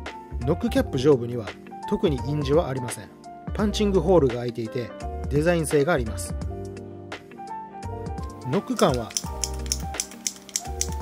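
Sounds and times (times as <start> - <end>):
background music: 0.0 - 11.0
mechanical pencil clicking: 8.2 - 11.0.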